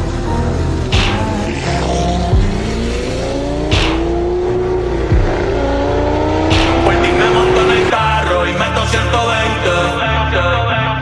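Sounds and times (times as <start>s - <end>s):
car engine revving: 0.0s - 10.0s
low bass line: 0.0s - 11.0s.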